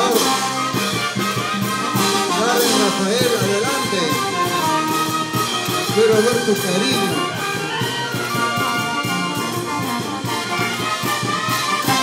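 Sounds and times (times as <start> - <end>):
bass drum and snare drums: 0.0 - 12.0
trumpets and trombones melody: 0.0 - 12.0.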